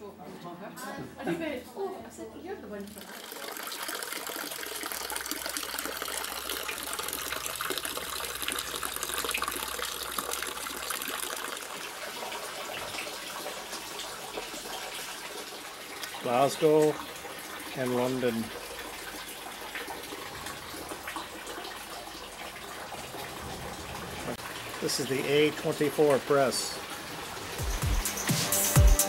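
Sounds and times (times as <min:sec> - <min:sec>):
water splashing into basin: 0:02.7 - 0:27.8.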